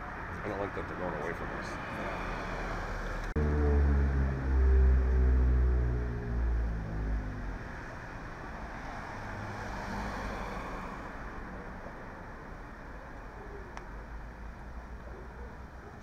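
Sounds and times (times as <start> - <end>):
vehicle engine: 0.0 - 12.1.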